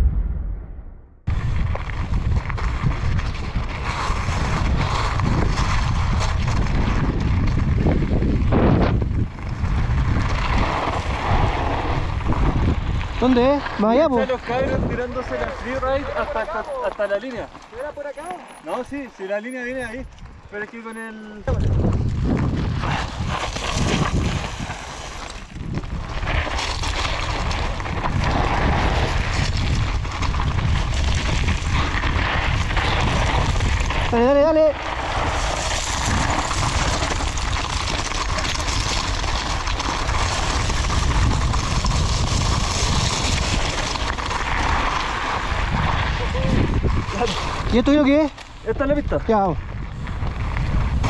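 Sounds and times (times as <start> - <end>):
wind on microphone: 0.0 - 15.9, 21.4 - 51.0
bike rattling: 1.3 - 51.0
tyres crunching over stones: 14.5 - 48.7.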